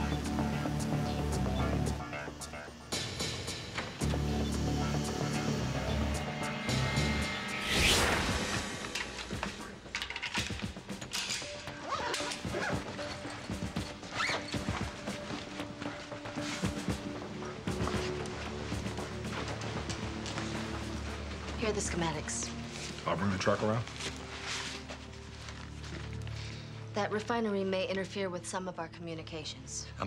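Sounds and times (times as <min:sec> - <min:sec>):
suspenseful film score: 0:00.0 - 0:30.0
loud rushing swell: 0:06.0 - 0:09.5.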